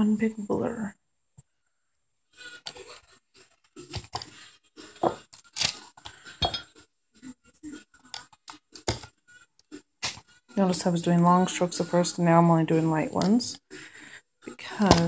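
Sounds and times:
containers clinking against funnel: 6.4 - 6.7.

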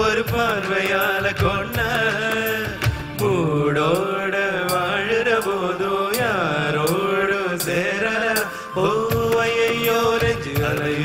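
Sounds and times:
hand percussion: 0.0 - 11.0.

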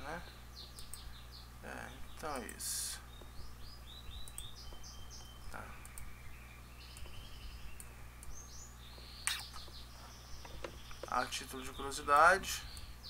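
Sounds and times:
bird chirping: 0.0 - 13.0
low steady hum: 0.0 - 13.0.

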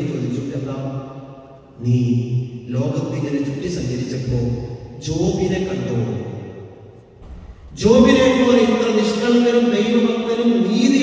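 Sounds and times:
man speaking: 0.0 - 0.9, 1.7 - 6.2, 7.6 - 11.0.

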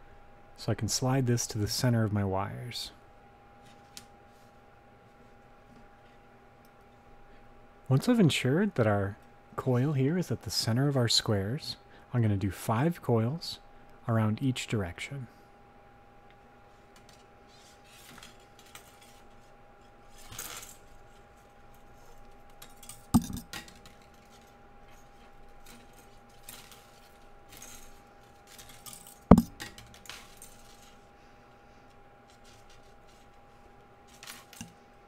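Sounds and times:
sharp knocks: 23.2 - 23.5, 29.3 - 29.6.

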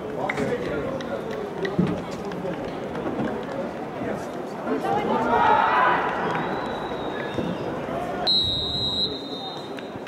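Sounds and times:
stadium ambience: 0.0 - 10.0.

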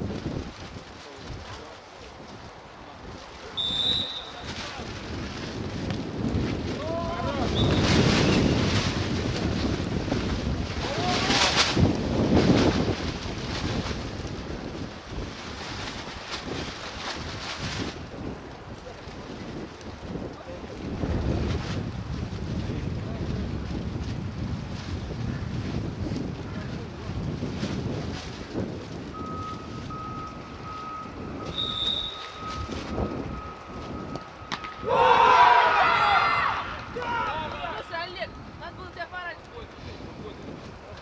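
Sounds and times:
wind buffeting microphone: 0.0 - 41.0
players shouting: 34.8 - 38.2.

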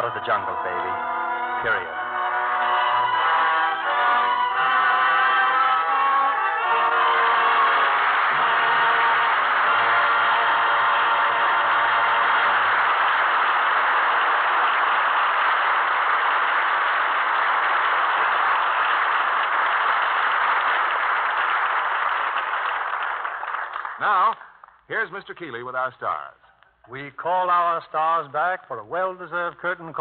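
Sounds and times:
orchestra music: 0.0 - 13.0
audience applauding: 0.0 - 24.8.

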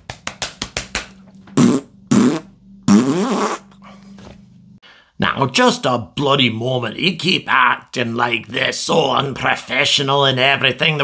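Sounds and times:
blown raspberry noises: 1.6 - 3.8.

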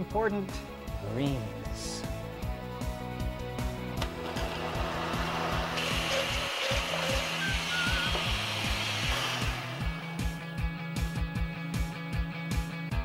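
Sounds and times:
background music with beat: 0.0 - 13.0
blender running: 4.0 - 10.4.

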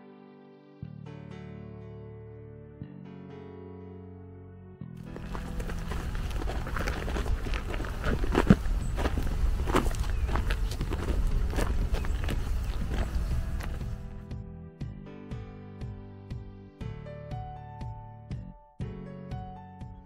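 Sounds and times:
background music: 0.0 - 20.0
footsteps on dirt: 5.0 - 14.2
steady low rumble: 5.0 - 14.2.

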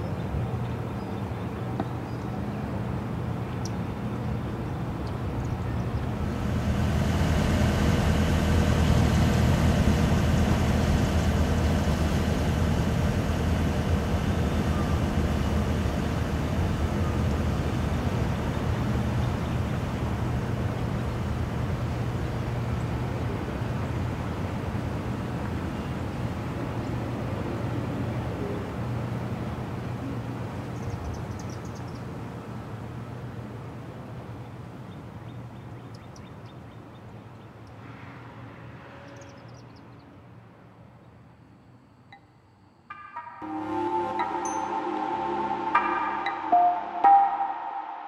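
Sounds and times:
low droning hum: 2.4 - 31.1, 43.4 - 48.0
faint higher tones: 42.9 - 48.0.

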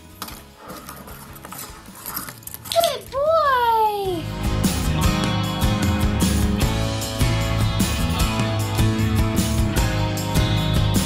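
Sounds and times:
toy cart wheels rattling on wood: 0.0 - 3.2.

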